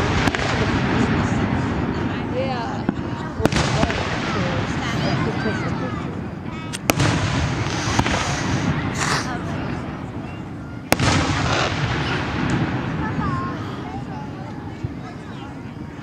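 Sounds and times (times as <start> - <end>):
low rumble of echoing booms: 0.0 - 14.2
firework shells bursting: 6.7 - 9.2, 10.9 - 13.0.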